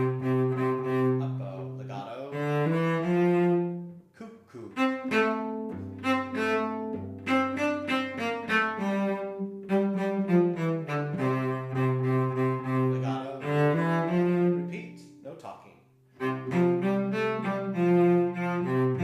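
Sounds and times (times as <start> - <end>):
cello playing bowed melody: 0.0 - 15.2, 16.1 - 19.0.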